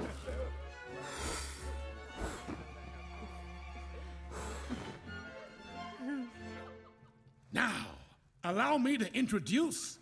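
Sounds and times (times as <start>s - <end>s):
film score music: 0.0s - 10.0s.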